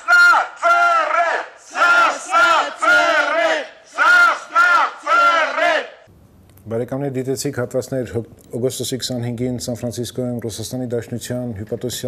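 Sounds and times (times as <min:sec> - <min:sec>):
man shouting through a megaphone: 0:00.0 - 0:01.5
crowd chanting: 0:00.0 - 0:06.1.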